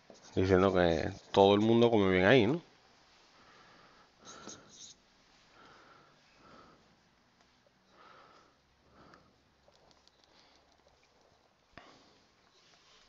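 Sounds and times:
marker squeaking on whiteboard: 0:00.0 - 0:01.8, 0:04.2 - 0:05.0
faint breathing: 0:03.1 - 0:09.6, 0:11.7 - 0:13.0.

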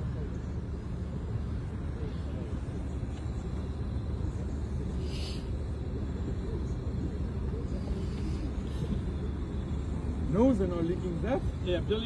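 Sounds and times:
faint voices: 0:00.0 - 0:12.0
steady low rumble: 0:00.0 - 0:12.0.

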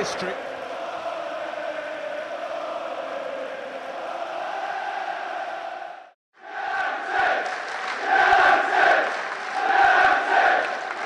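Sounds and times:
stadium crowd chanting: 0:00.0 - 0:11.0.

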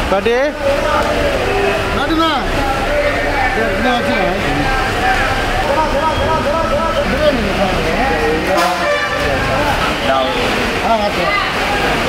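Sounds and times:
people talking: 0:00.0 - 0:12.0
traffic noise: 0:00.0 - 0:12.0
vehicle horn: 0:08.5 - 0:09.5.

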